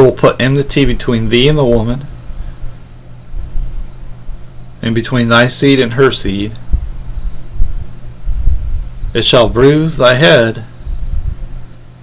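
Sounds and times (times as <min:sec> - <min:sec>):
faint high whine: 0:00.0 - 0:12.0
low hum: 0:00.0 - 0:12.0.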